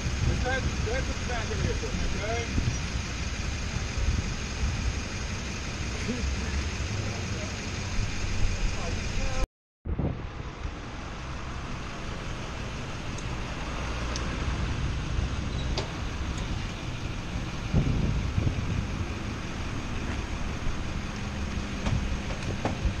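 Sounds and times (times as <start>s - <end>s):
vehicle engine running: 0.0s - 9.4s, 10.2s - 23.0s
city street traffic: 0.0s - 23.0s.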